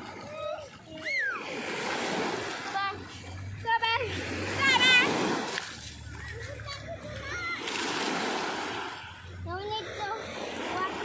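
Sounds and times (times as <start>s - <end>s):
small waves washing on sand: 0.0s - 11.0s.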